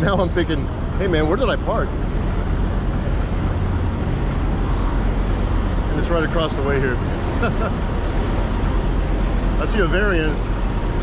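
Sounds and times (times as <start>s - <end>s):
diesel trucks idling: 0.0s - 11.0s.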